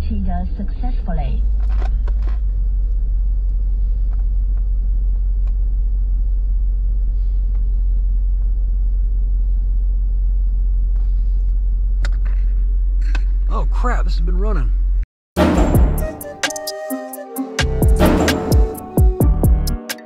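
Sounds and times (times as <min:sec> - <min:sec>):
car cabin low rumble: 0:00.0 - 0:15.0.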